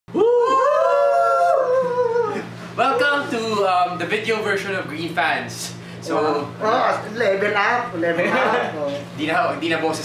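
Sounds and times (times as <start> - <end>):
men howling cheer: 0.1 - 2.6.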